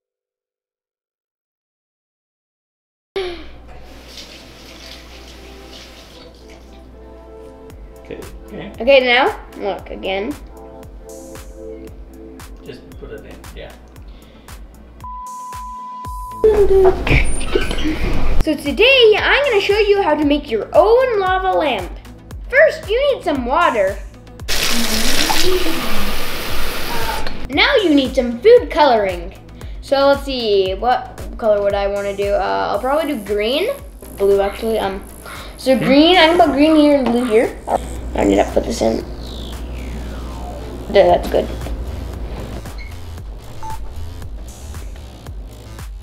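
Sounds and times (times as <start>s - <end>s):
soft background music: 3.2s - 26.2s, 27.0s - 46.0s
faucet running into glass: 3.8s - 6.8s, 24.5s - 27.0s.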